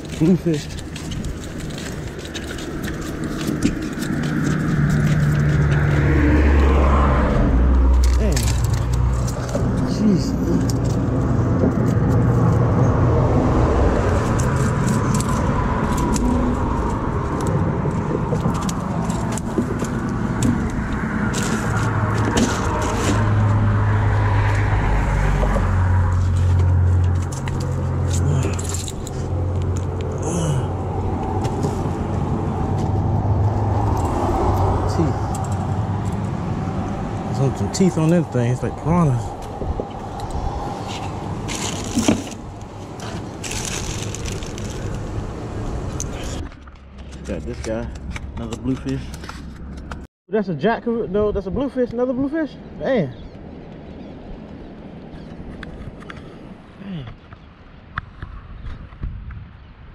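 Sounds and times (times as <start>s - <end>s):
handling clicks and rattles: 0.0s - 6.0s, 7.9s - 11.0s, 14.2s - 23.2s, 26.3s - 30.1s
cars and trucks passing: 0.0s - 50.1s, 52.2s - 59.9s
low traffic rumble: 0.0s - 59.9s.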